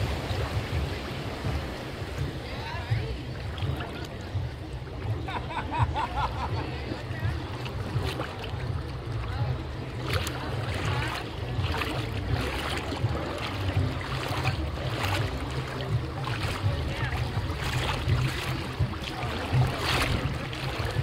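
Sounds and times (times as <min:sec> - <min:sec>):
wind rumble on microphone: 0:00.0 - 0:21.0.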